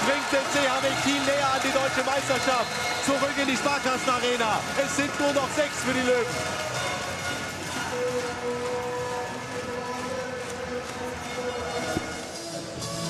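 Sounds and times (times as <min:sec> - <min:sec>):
arena crowd noise: 0:00.0 - 0:13.0
music: 0:00.0 - 0:13.0.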